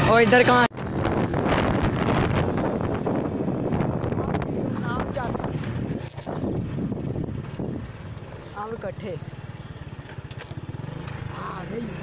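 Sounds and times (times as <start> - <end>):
wind on microphone: 0.7 - 8.3
motorcycle engine puttering: 4.6 - 12.0.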